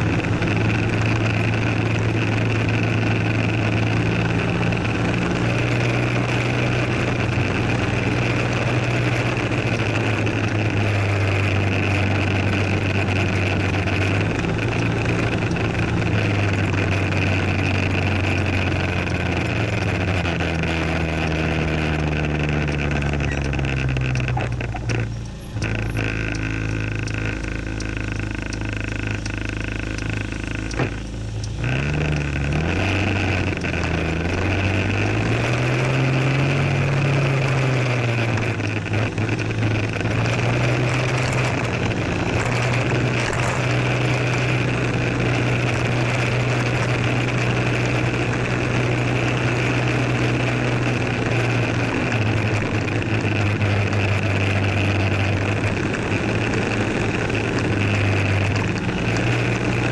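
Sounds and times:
scooter engine: 0.0s - 59.9s.

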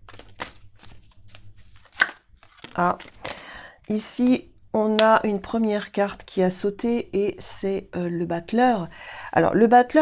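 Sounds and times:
cards being shuffled: 0.0s - 3.4s.

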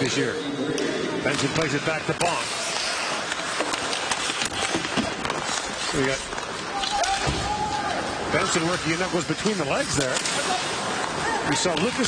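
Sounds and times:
arena crowd noise: 0.0s - 12.0s
hockey sticks clacking on puck: 1.2s - 12.0s.

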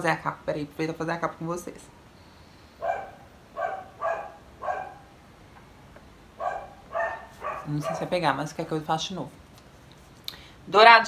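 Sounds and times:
small dog barking: 2.8s - 5.1s, 6.4s - 8.2s.

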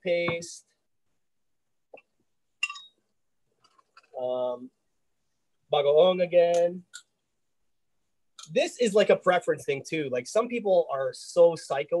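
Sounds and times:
spoon clinking against glass jar: 2.6s - 3.0s.

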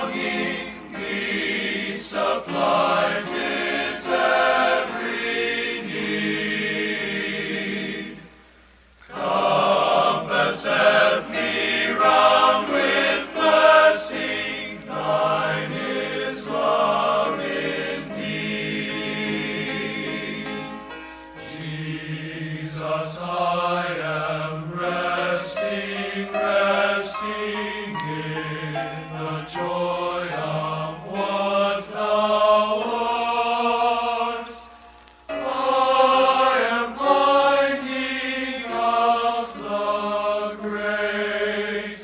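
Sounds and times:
male choir singing a hymn: 0.0s - 8.3s, 9.1s - 20.8s, 21.4s - 34.7s, 35.3s - 42.0s.

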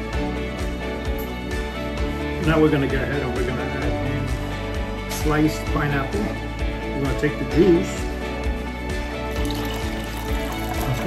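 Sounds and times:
background music: 0.0s - 11.0s
juice trickling into saucepan: 9.3s - 11.0s.

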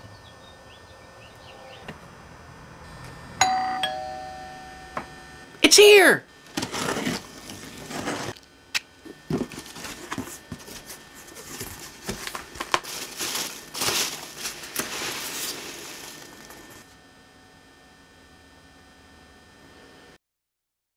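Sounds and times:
packing peanuts rustling: 9.4s - 16.9s.

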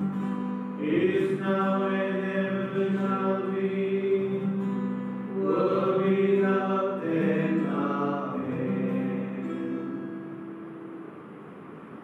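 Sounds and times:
men chanting together: 5.4s - 9.6s.

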